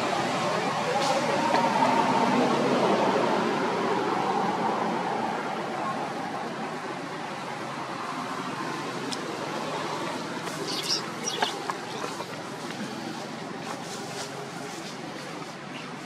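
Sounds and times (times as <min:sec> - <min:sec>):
steady background noise: 0:00.0 - 0:16.0.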